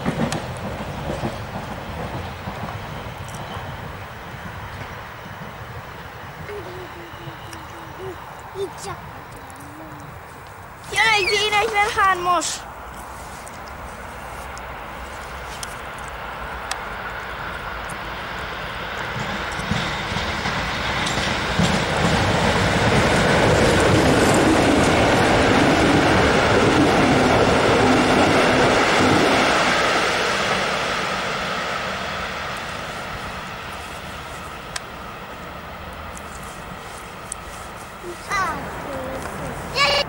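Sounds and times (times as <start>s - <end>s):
electric train rumble: 0.0s - 40.0s.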